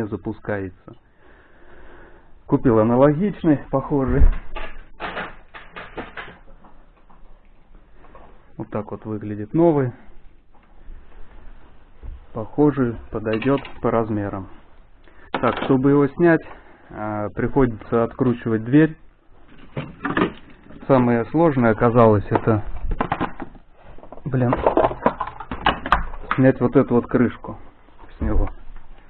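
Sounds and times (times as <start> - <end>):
knocks and clatters from handling: 4.2 - 7.2, 19.5 - 20.9, 22.3 - 26.4.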